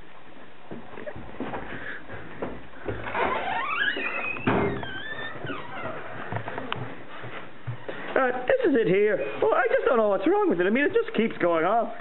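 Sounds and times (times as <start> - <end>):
door creaking open: 2.9 - 6.7
thud: 4.4 - 4.8.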